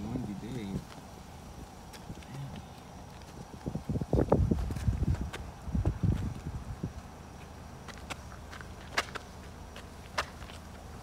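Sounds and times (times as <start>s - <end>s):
feet thudding and scuffing on pavement: 0.0s - 11.0s.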